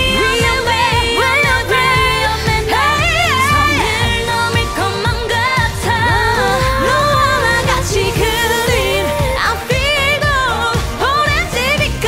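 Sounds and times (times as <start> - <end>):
female vocal group singing: 0.0 - 12.0
pop backing track with beat: 0.0 - 12.0.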